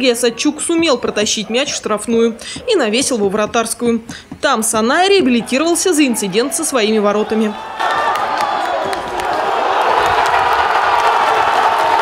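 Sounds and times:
stadium crowd cheering: 4.8 - 12.0.

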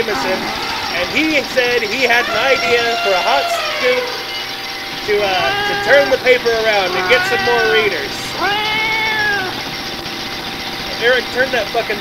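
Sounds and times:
drawn-out voiced sound: 0.0 - 4.4, 5.1 - 9.6
loud digging machine noise: 0.0 - 8.4.

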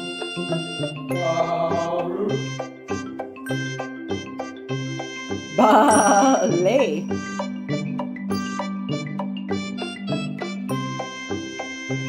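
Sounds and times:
light background music: 0.0 - 12.0
wavering voice-like sound: 1.1 - 2.5, 5.6 - 7.0.

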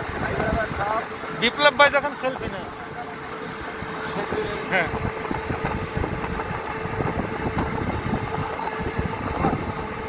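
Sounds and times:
wind buffeting microphone: 0.0 - 1.6, 3.5 - 10.0
steady hum: 0.0 - 10.0
vehicle driving on road: 0.0 - 10.0.

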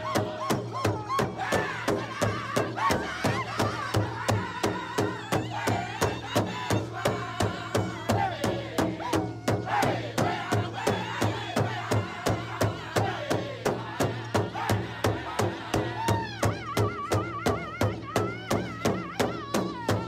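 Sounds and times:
high wavering group singing: 0.0 - 17.2
steady drum beat: 0.0 - 20.0.

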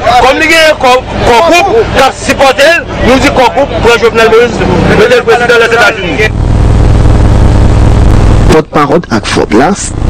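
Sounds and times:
loud steady low rumble: 3.8 - 8.9.

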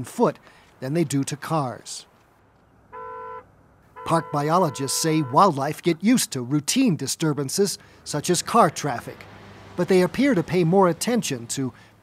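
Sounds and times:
short horn toot: 3.0 - 5.4.

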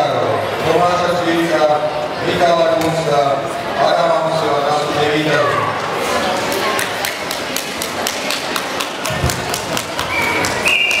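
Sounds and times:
hand claps in a large hall: 6.4 - 11.0.

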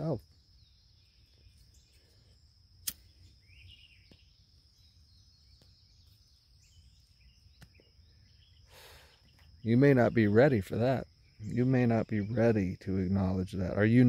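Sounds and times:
bird chirps: 0.0 - 14.0
high insect trill: 0.0 - 14.0
sharp click: 2.8 - 3.1.

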